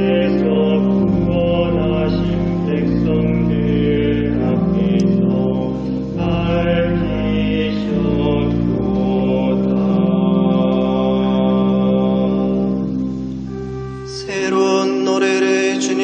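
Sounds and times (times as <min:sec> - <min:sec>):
church organ sustained chords: 0:00.0 - 0:16.0.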